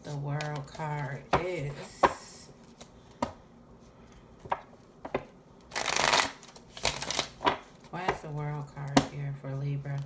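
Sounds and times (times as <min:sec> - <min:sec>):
cards riffling: 0:05.7 - 0:07.7.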